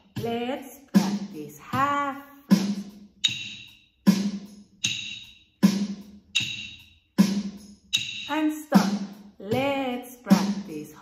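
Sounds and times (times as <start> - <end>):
electronic drum beat: 0.0 - 11.0
rhythm sticks clicking: 2.6 - 9.6.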